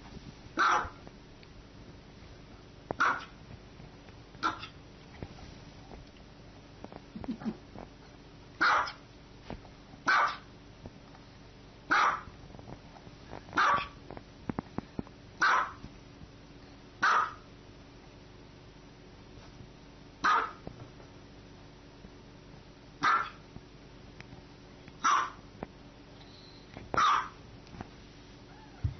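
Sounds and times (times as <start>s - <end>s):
small dog barking: 0.6s - 1.0s, 3.0s - 3.4s, 4.4s - 4.8s, 8.6s - 9.0s, 10.0s - 10.5s, 11.9s - 12.3s, 13.6s - 14.0s, 15.4s - 15.8s, 17.0s - 17.5s, 20.2s - 20.6s, 23.0s - 23.4s, 25.0s - 25.4s, 27.0s - 27.4s.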